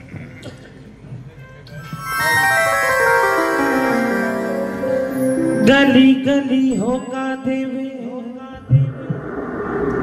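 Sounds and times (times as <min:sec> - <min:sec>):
devotional music on electronic keyboard: 0:01.8 - 0:08.0.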